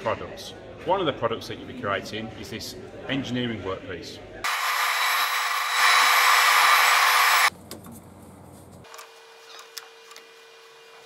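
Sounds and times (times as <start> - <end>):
quiet workshop sounds: 0.0 - 11.0
milling machine cutter whine: 4.5 - 7.5.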